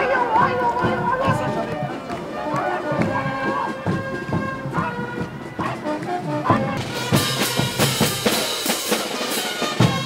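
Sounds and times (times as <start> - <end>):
voices: 0.0 - 7.2
wind instruments playing melody: 0.0 - 10.0
steady drum beat: 0.1 - 10.0.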